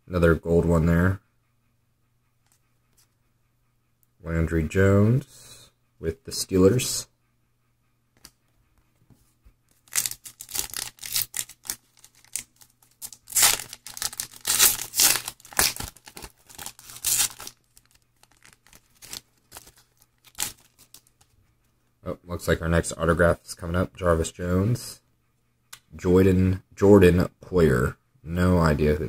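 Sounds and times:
foil wrapper tearing and crinkling: 9.8s - 21.2s.

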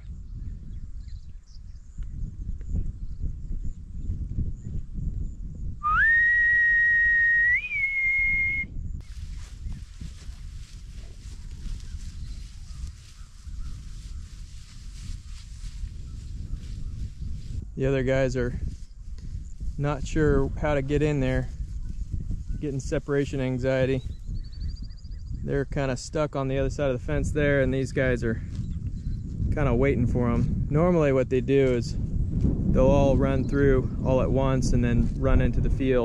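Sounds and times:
person whistling a long note: 5.8s - 8.7s.

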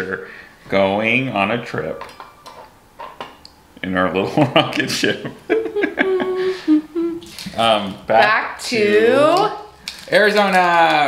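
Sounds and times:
kitchenware clinking: 1.9s - 3.4s
person speaking: 3.8s - 11.0s.

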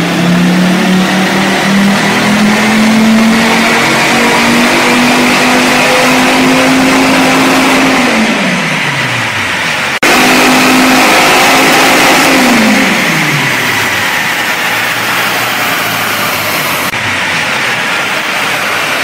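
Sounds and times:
car engine revving under load: 0.0s - 19.0s.

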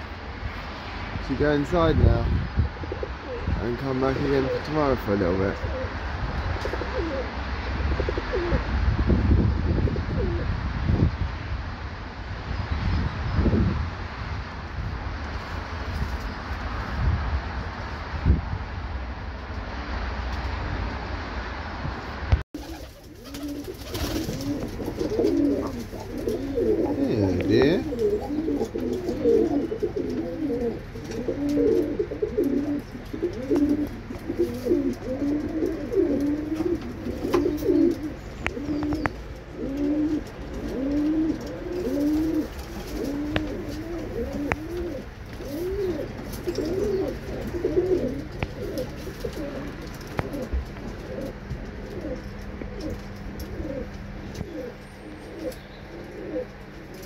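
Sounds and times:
pigeons cooing: 1.6s - 8.7s, 9.8s - 10.5s, 22.6s - 57.0s.

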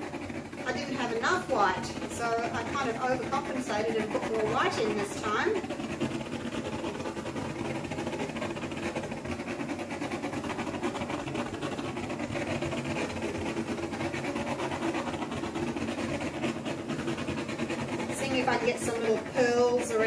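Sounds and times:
gas torch flame rushing: 0.0s - 20.0s.

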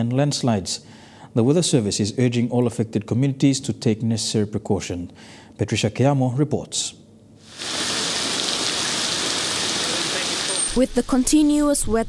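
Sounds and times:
rain falling on water: 7.5s - 11.2s.

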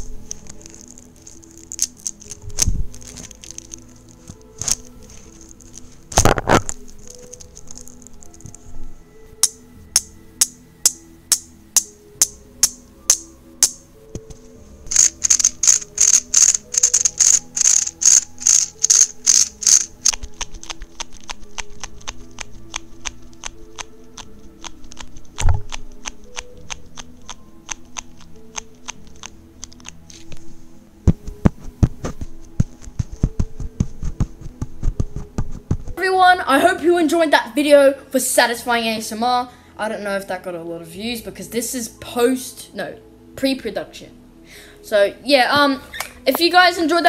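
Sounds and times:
plastic fidget toys clicking: 0.0s - 8.5s, 14.9s - 30.3s
soft background music: 0.0s - 47.0s.

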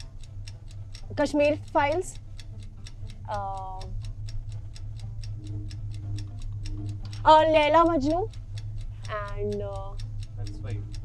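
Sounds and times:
low steady hum: 0.0s - 11.0s
rapid clock ticking: 0.0s - 11.0s.

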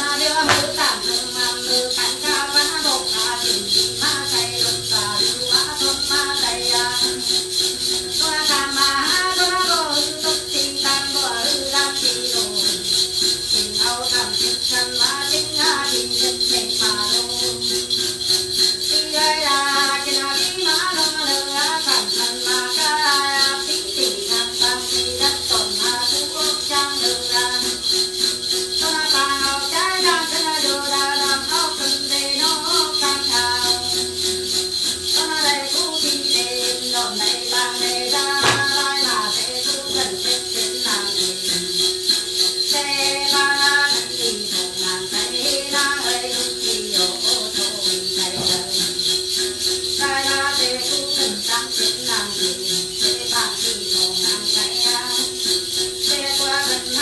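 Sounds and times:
bell rattle jingling: 0.0s - 57.0s
ritual chant singing: 0.0s - 57.0s.

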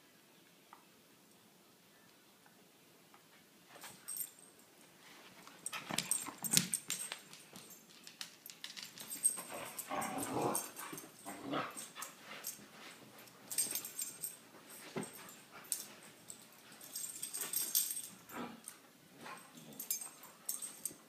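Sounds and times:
dogs growling playfully: 9.4s - 12.6s.

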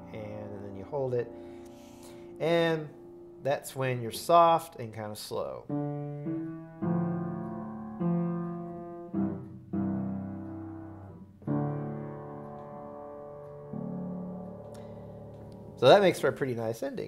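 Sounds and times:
piano playing soft chords: 0.0s - 17.0s.

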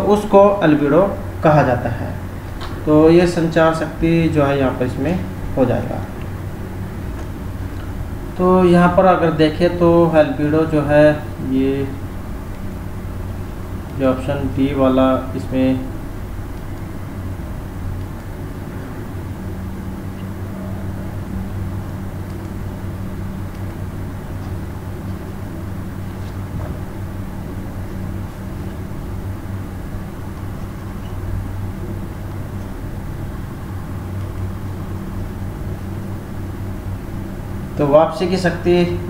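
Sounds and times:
constant background noise: 0.0s - 39.0s
steady low hum: 0.0s - 39.0s.

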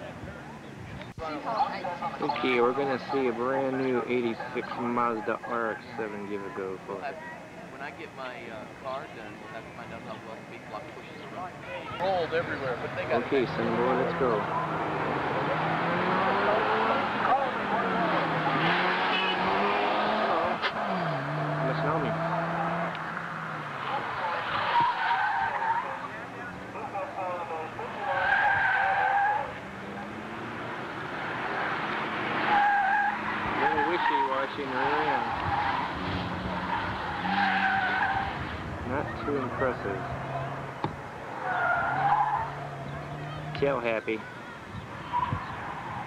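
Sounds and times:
car engine revving: 12.7s - 44.0s
tyres squealing: 13.5s - 26.9s, 32.3s - 38.4s.

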